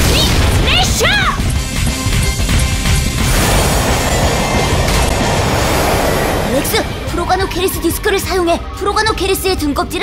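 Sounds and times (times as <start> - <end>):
rushing grinding noise: 3.0 - 7.4
rising whoosh: 3.2 - 7.6.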